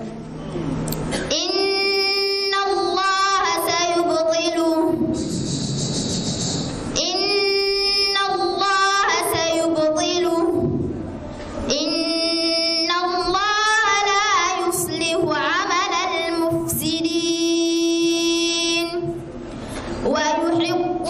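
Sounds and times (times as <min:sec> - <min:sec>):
woman reciting melodically: 0:00.0 - 0:21.0.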